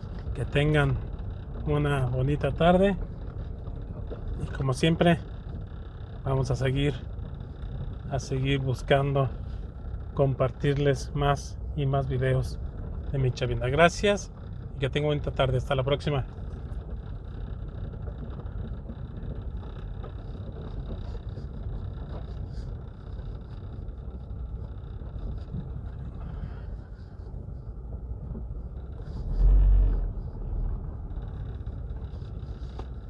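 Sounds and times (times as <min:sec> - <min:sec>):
car engine and tyres rumbling: 0:00.0 - 0:33.0
loud low thump: 0:29.3 - 0:30.9.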